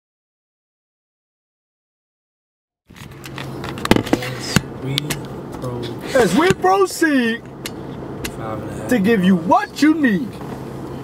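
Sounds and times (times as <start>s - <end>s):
car engine and road hum: 2.9s - 11.0s.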